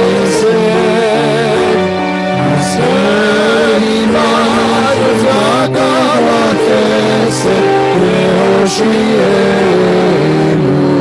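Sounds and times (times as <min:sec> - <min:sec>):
person singing with vibrato: 0:00.0 - 0:11.0.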